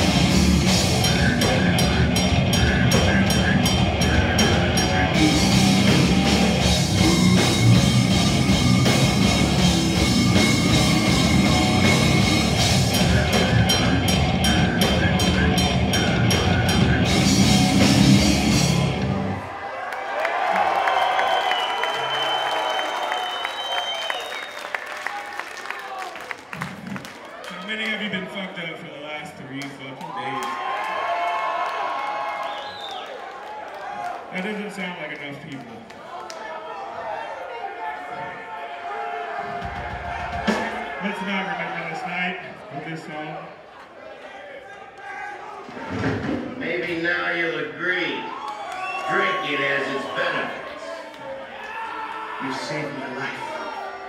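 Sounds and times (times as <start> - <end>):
drum beat: 0.0 - 19.4, 39.4 - 41.0
death metal band playing: 0.0 - 19.5, 39.5 - 41.6.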